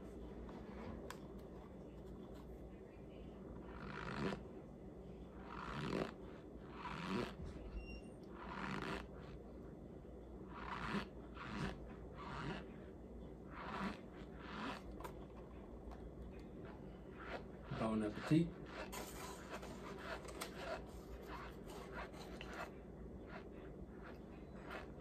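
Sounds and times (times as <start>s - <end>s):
person eating mouth sounds: 13.5s - 15.2s.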